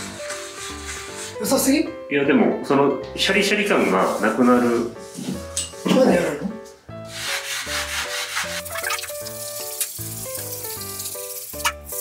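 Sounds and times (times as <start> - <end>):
abrasive pad scrubbing glass: 0.0 - 1.4, 7.1 - 10.2
background music: 0.0 - 12.0.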